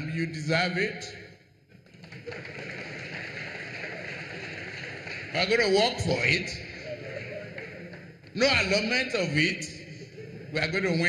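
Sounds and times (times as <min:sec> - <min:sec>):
audience crowd noise: 0:01.8 - 0:11.0.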